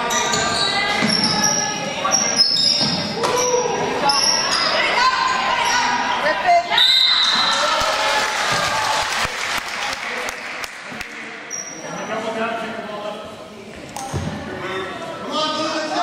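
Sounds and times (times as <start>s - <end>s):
sneakers squeaking on court: 0.1s - 4.9s
people shouting in a hall: 3.1s - 9.4s
referee's whistle: 6.7s - 7.6s.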